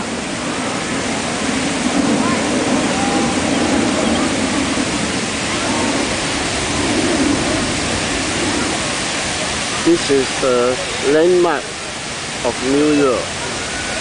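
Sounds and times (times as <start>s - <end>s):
faint distant voices: 0.0s - 14.0s
fountain water splashing: 0.0s - 14.0s.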